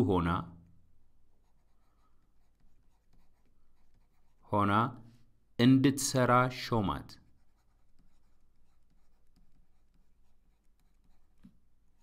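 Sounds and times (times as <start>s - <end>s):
stylus scratching on a tablet: 1.2s - 4.6s, 7.2s - 12.0s.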